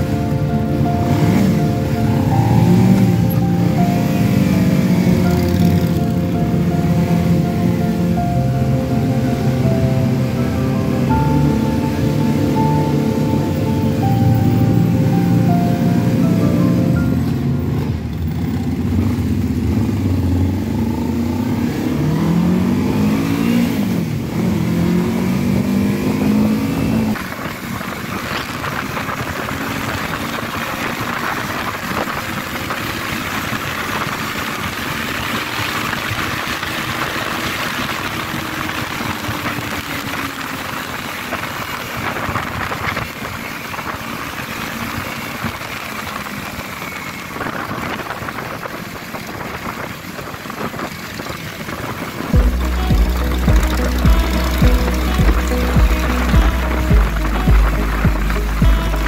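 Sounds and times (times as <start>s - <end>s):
motorcycle engine revving: 1.0s - 7.9s, 15.9s - 59.0s
wind rushing over microphone: 26.5s - 53.2s.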